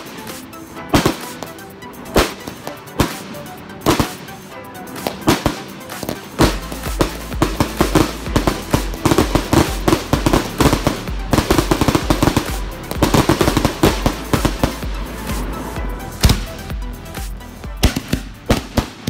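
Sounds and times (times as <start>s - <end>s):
crackling fireworks: 0.0s - 19.0s.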